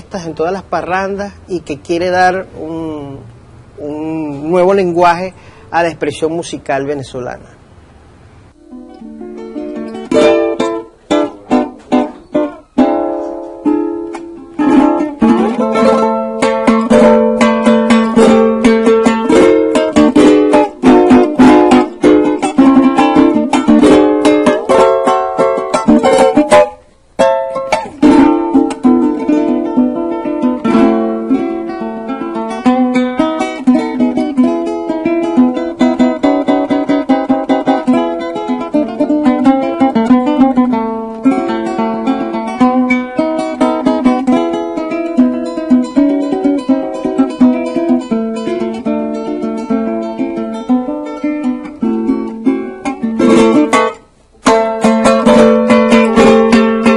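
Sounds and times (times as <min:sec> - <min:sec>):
picked melody notes: 0:00.0 - 0:56.9
strummed small guitar: 0:08.5 - 0:56.9.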